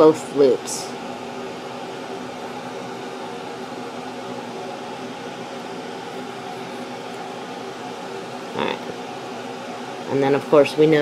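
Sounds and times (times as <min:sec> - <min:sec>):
air conditioner fan whirring: 0:00.0 - 0:11.0.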